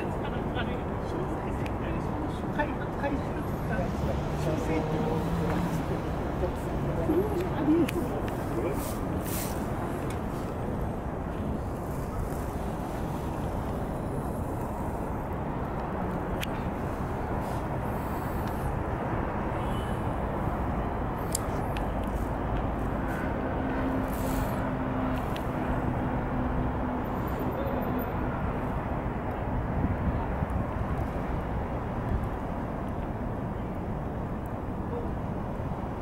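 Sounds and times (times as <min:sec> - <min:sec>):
distant city traffic: 0:00.0 - 0:36.0
wind on microphone: 0:28.8 - 0:33.4.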